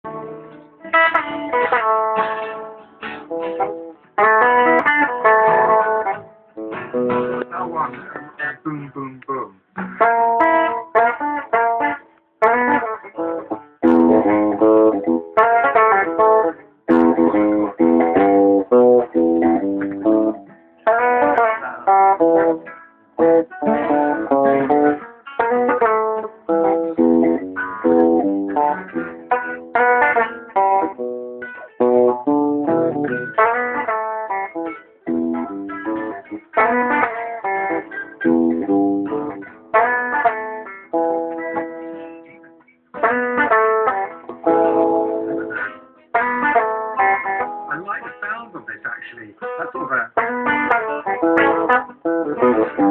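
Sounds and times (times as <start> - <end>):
guitar picking single notes: 0.0 - 52.9.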